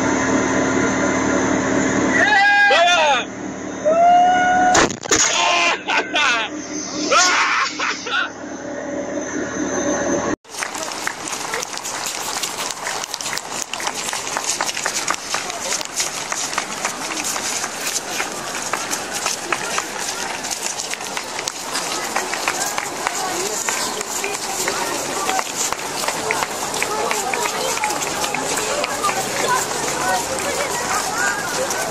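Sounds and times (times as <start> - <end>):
crowd chatter: 10.4 - 31.9
marching boots on stone paving: 10.5 - 31.9.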